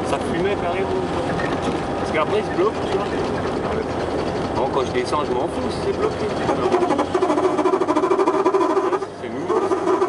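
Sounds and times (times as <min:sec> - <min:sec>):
car engine droning: 0:00.0 - 0:10.0.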